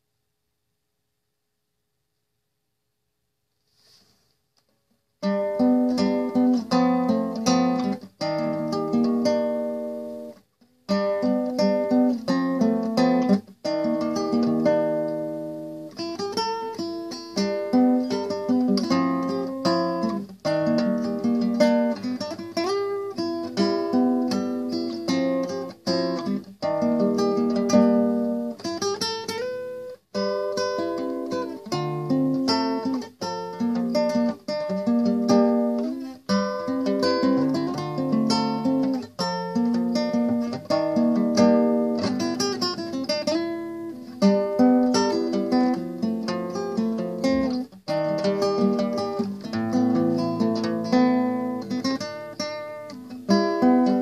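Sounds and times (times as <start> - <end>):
fingerstyle classical guitar: 5.2 - 54.0.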